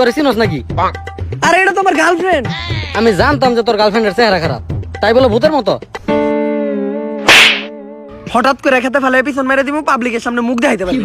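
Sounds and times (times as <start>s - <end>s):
whip-like swish: 7.2s - 7.7s.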